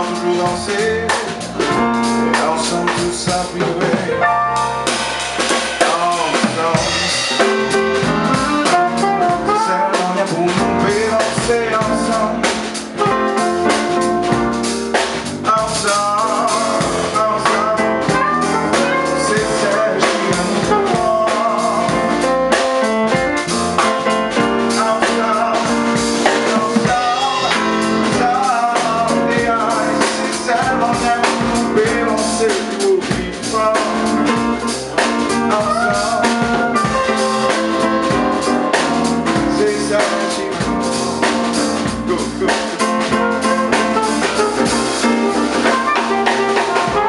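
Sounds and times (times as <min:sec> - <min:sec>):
drum kit with rimshots: 0:00.0 - 0:47.0
electric bass: 0:00.0 - 0:47.0
piano: 0:00.0 - 0:47.0
saxophone: 0:05.8 - 0:47.0.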